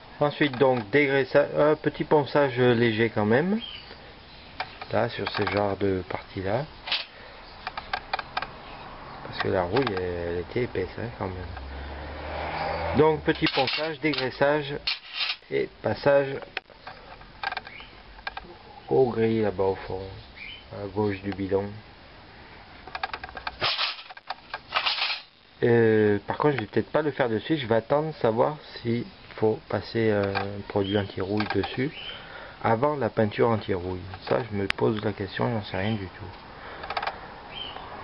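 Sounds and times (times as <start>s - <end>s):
faint background hiss: 0.0s - 38.0s
rubbing and scraping handling noise: 4.6s - 8.1s, 13.4s - 15.5s, 22.8s - 25.4s
clicks: 36.3s - 37.2s.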